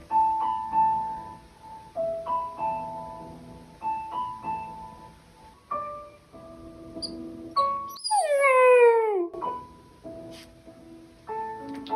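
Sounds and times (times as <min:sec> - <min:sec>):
piano music: 0:00.0 - 0:11.9
puppy howling: 0:07.9 - 0:09.4.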